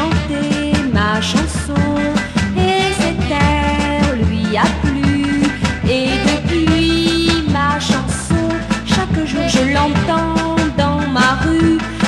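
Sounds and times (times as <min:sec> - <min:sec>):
pop song from a record: 0:00.0 - 0:12.0.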